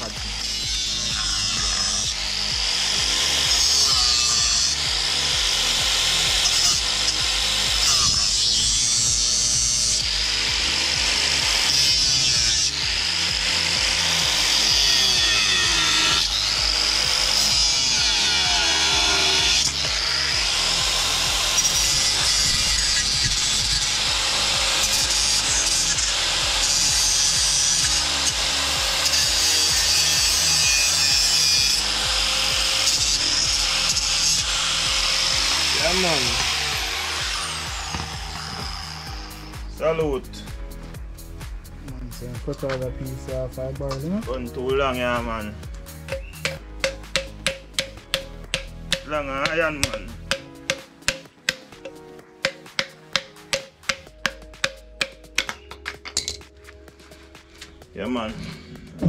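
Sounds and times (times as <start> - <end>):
angle grinder whining: 0.0 - 39.8, 44.9 - 56.4.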